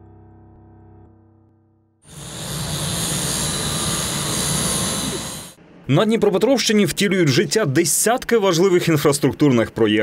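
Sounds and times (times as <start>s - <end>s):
diesel engines drone with high whine: 2.0s - 5.6s.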